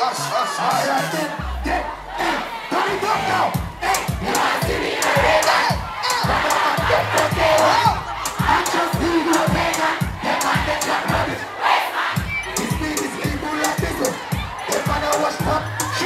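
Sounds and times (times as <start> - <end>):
crowd shouting along: 0.0 - 16.0
bass drum beat: 3.1 - 11.4, 12.2 - 16.0.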